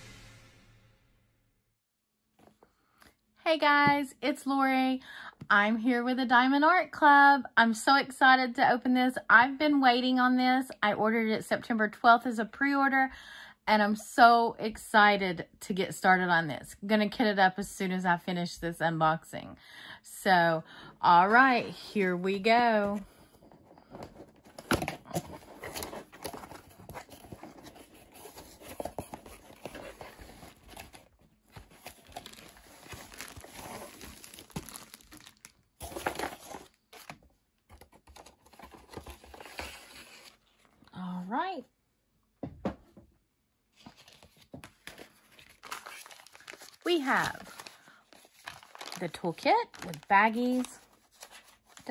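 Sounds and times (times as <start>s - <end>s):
cardboard box being opened: 23.9s - 37.1s, 44.0s - 46.8s, 47.4s - 49.0s
plastic pouch crinkling: 29.1s - 37.1s, 44.0s - 51.9s.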